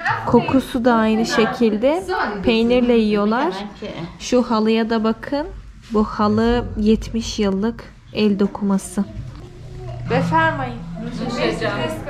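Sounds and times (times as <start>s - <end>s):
low steady hum: 2.1s - 12.0s.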